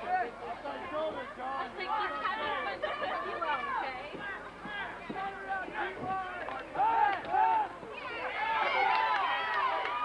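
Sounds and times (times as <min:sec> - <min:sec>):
overlapping crowd chatter: 0:00.0 - 0:10.0.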